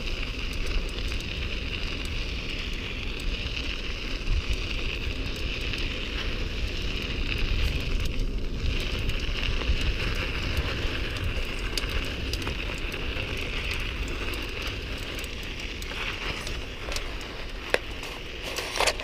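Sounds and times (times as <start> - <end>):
bicycle tyres on asphalt: 0.0 - 19.0
small crackles and clicks: 0.0 - 19.0.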